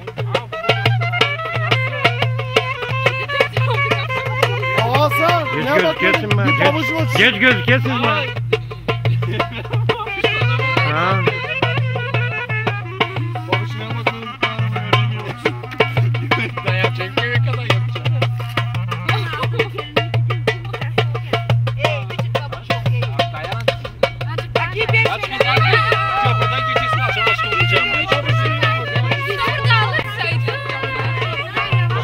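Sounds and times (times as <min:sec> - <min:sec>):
clarinet melody: 0:00.0 - 0:09.2, 0:09.9 - 0:19.8, 0:25.4 - 0:32.0
steady drum beat: 0:00.0 - 0:32.0.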